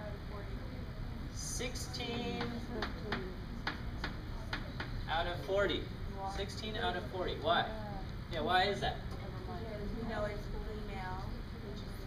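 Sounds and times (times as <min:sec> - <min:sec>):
chalk tapping on blackboard: 0:02.4 - 0:05.0.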